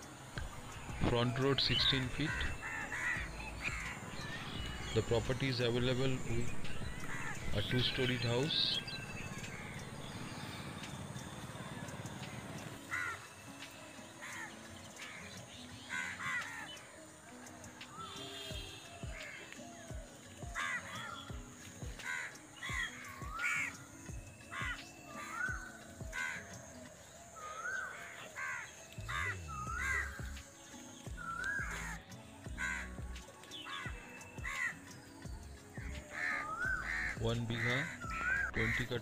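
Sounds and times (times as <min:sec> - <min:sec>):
background music with steady beat: 0:00.0 - 0:39.0
crows cawing: 0:00.4 - 0:39.0.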